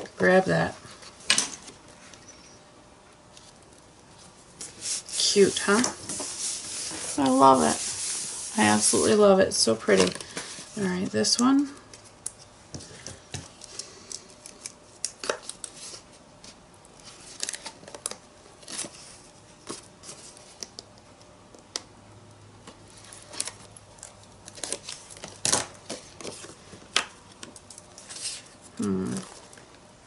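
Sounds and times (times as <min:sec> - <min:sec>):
paper rustling and crinkling: 0:03.4 - 0:09.2, 0:12.8 - 0:20.7, 0:22.9 - 0:29.6.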